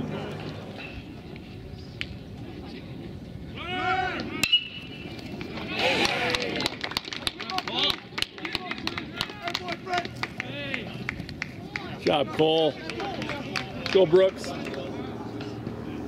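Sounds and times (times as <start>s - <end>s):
players shouting: 3.5s - 6.7s, 7.4s - 15.2s.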